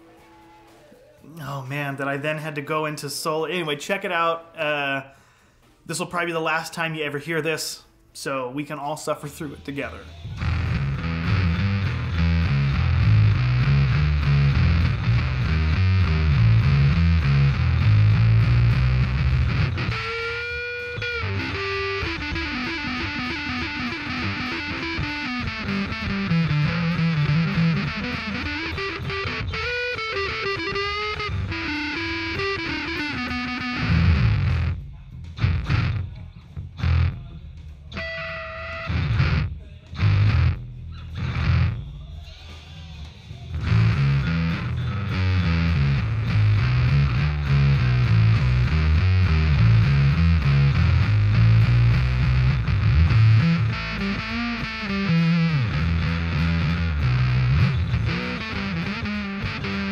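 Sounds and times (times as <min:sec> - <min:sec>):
fuzz bass guitar: 0:10.2 - 0:42.2, 0:43.3 - 0:59.9.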